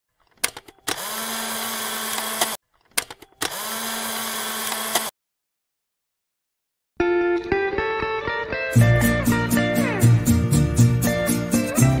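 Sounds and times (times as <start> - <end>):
clicks: 0.2 - 1.1, 2.1 - 3.6
small motor whirring: 0.9 - 2.6, 3.4 - 5.1.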